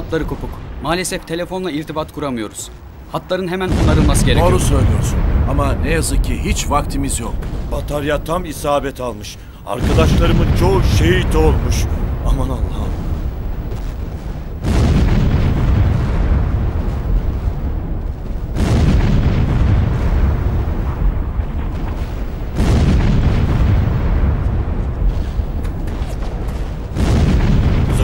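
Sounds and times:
artillery shell explosions: 0:03.6 - 0:28.0.

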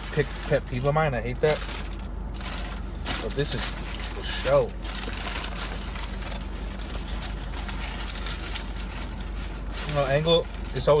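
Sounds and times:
car cabin engine hum and hiss: 0:00.0 - 0:11.0.

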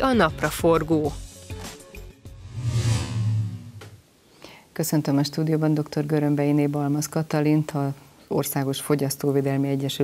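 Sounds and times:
whoosh: 0:02.3 - 0:04.0.

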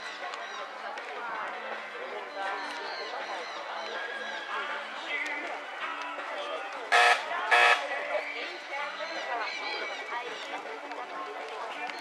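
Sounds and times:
people chattering: 0:00.0 - 0:12.0
loud buzzer blasts: 0:06.9 - 0:07.9.

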